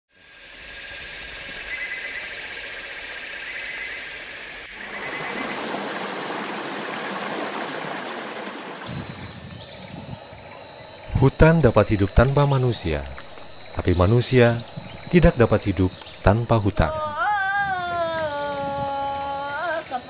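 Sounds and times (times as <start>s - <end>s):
high insect calls: 0.1s - 20.0s
waterfall rushing: 4.7s - 9.2s.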